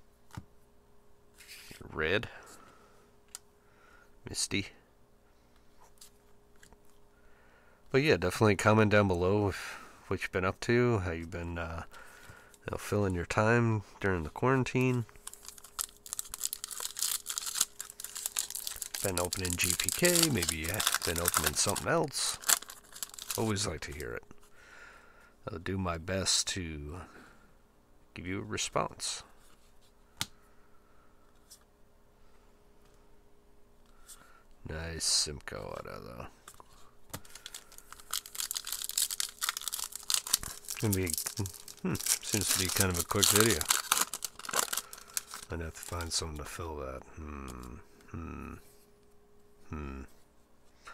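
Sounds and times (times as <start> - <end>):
foil wrapper tearing and crinkling: 15.2 - 24.1, 37.2 - 46.3.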